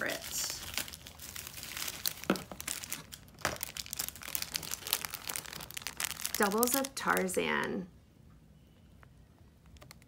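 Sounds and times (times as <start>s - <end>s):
plastic wrapping crinkling: 0.0s - 7.8s.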